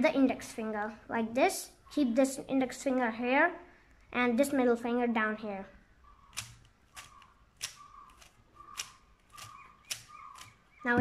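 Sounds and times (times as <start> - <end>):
puzzle cube layers clicking: 6.3 - 11.0.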